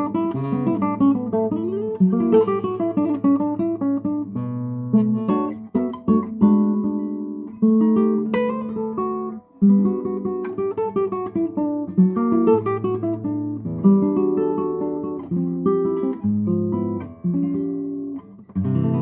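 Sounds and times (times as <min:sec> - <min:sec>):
fingerstyle classical guitar: 0:00.0 - 0:19.0.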